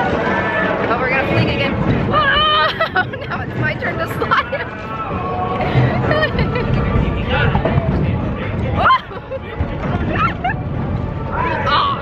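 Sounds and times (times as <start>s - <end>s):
crowd chatter: 0.0s - 12.0s
ride rumbling: 0.0s - 12.0s.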